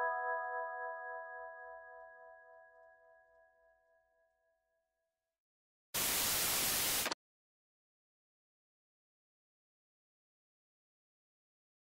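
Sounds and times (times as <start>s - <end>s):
television static hiss: 6.0s - 7.2s.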